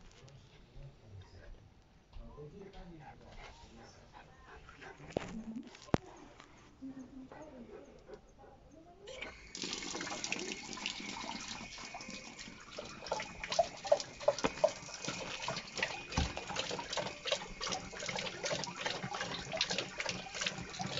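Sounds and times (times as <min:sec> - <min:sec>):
dog lapping water: 0:09.1 - 0:20.9
water running from a tap: 0:09.1 - 0:20.9.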